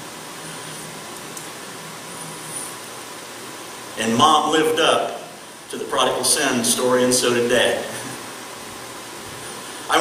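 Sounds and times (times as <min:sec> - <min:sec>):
even hiss: 0:00.0 - 0:10.0
faint low hum: 0:00.0 - 0:10.0.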